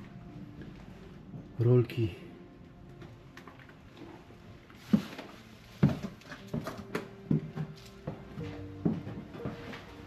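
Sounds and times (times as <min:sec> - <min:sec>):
heavy footsteps on wooden stairs: 0:04.9 - 0:10.0.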